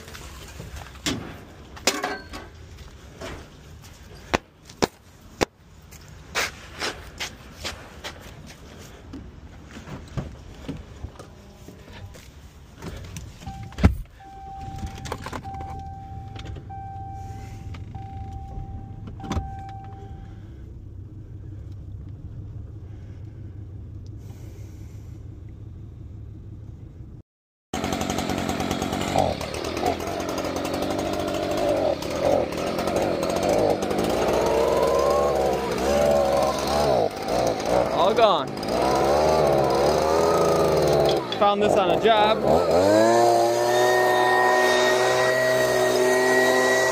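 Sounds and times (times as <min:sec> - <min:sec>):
engine running: 0:09.1 - 0:27.2, 0:27.8 - 0:46.9
truck door shutting: 0:12.9 - 0:20.1
warning chime beeping: 0:13.4 - 0:20.4
leaf blower revving: 0:27.8 - 0:46.9.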